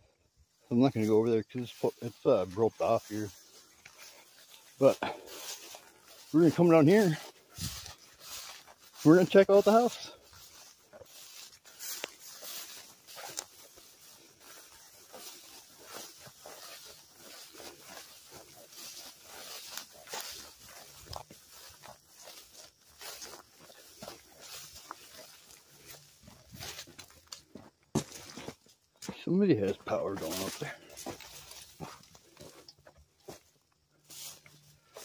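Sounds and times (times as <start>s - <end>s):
footsteps through tall grass: 0.3s - 35.0s
stalks rustling against legs: 0.6s - 35.0s.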